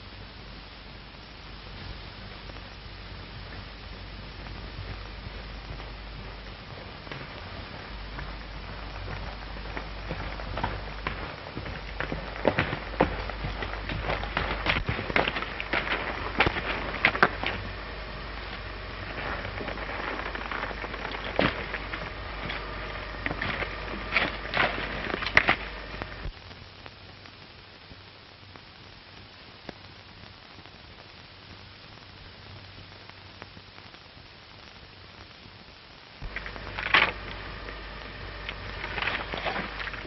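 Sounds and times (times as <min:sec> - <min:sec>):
low hum: 0:00.0 - 0:30.1, 0:32.0 - 0:40.0
film soundtrack hiss: 0:00.0 - 0:40.0
horse hooves on leafy trail: 0:01.7 - 0:26.4, 0:36.2 - 0:40.0.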